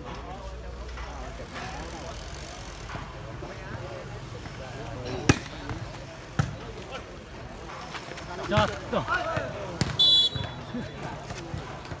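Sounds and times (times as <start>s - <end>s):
spectators chattering and calling: 0.0s - 12.0s.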